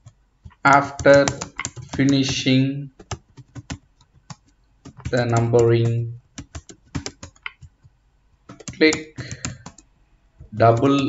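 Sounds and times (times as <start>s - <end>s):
computer keyboard typing: 0.0s - 9.9s, 10.5s - 11.0s
person speaking: 0.5s - 3.1s, 4.9s - 7.5s, 8.5s - 9.7s, 10.4s - 11.0s.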